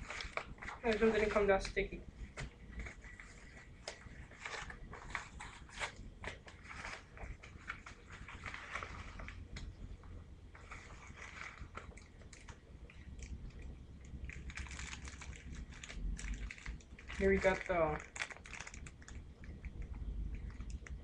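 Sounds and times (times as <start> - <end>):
padded envelope rustling: 0.0 - 9.8, 10.5 - 13.3, 14.2 - 21.0
plastic wrap crinkling: 0.0 - 21.0.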